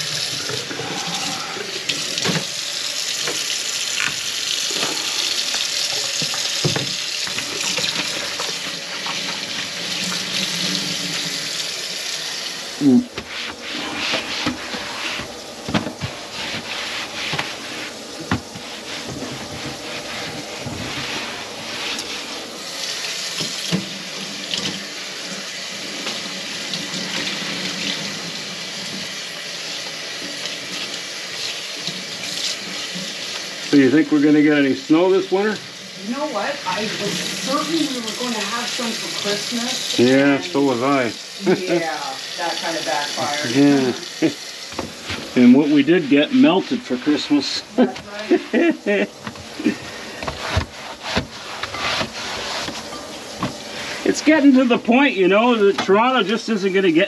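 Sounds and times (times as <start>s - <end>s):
tap running into sink: 1.8s - 11.6s, 13.1s - 16.7s, 18.2s - 21.1s, 23.1s - 24.9s, 44.2s - 45.4s, 49.2s - 53.8s.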